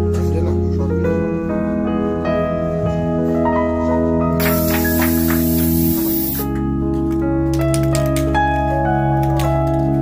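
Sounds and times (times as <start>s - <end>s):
keyboard music: 1.2s - 9.6s
aerosol spray hissing: 4.4s - 6.5s.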